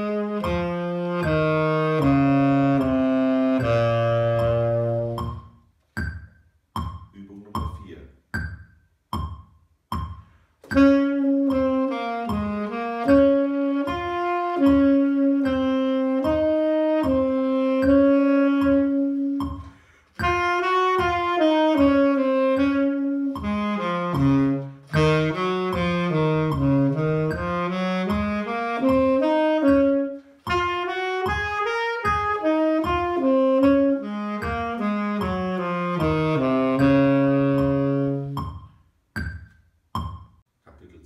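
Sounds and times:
tenor saxophone notes: 0.0s - 5.6s, 10.7s - 38.6s
player breathing: 19.6s - 20.2s.

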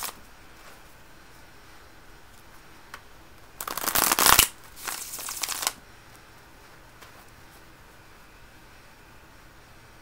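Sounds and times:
cards being shuffled: 0.0s - 0.2s, 3.6s - 5.8s.

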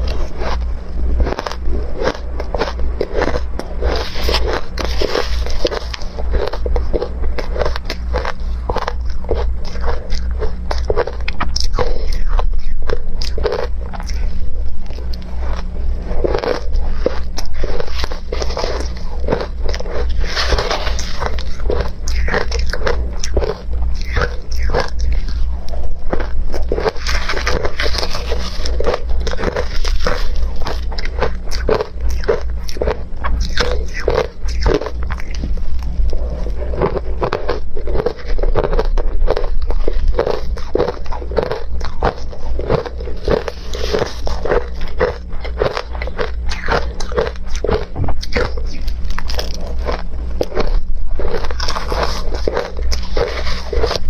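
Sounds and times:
crunching and chewing ice: 0.0s - 54.0s
low steady hum: 0.0s - 54.0s.

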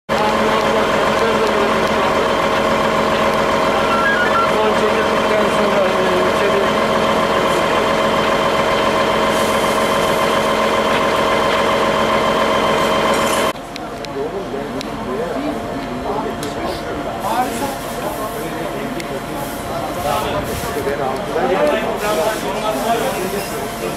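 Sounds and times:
fire truck engine running: 0.1s - 23.9s
faint voices: 3.6s - 8.0s.

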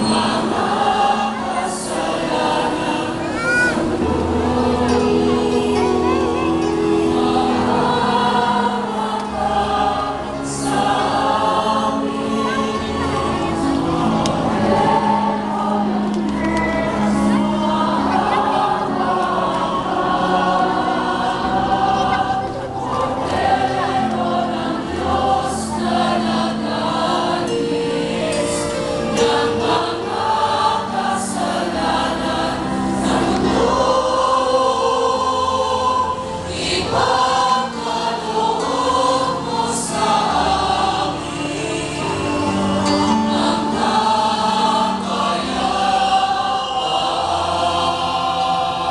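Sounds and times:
choir singing a hymn: 0.0s - 48.9s
instrumental accompaniment: 0.0s - 48.9s.

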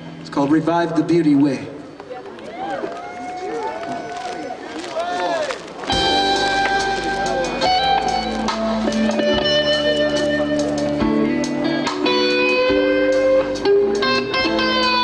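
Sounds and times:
live rock band playing: 5.8s - 15.0s.

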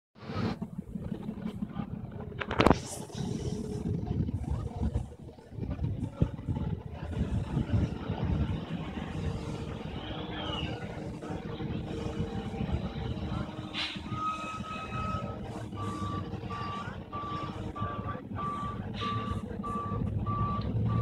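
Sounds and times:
wind buffeting microphone: 0.2s - 21.0s.

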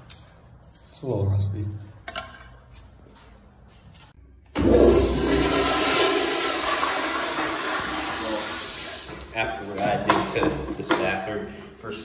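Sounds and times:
toilet flushing: 4.5s - 9.6s.

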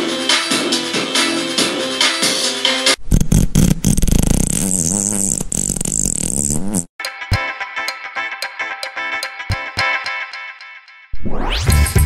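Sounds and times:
buzzing fart sound effect: 3.0s - 6.9s.

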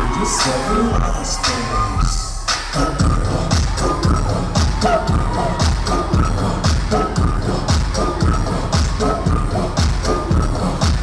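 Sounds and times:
loud dance-pop music: 0.0s - 11.0s.

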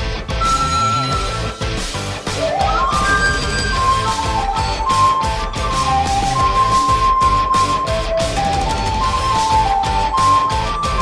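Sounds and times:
backing track with drums and bass: 0.0s - 11.0s
recorder playing melody: 0.3s - 11.0s.

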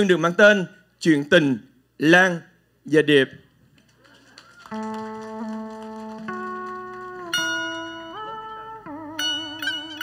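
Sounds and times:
electronic keyboard held notes: 4.7s - 10.0s.

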